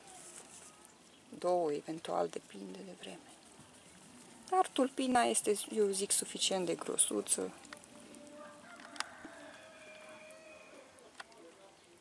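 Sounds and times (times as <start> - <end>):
distant poultry call: 8.2 - 11.0.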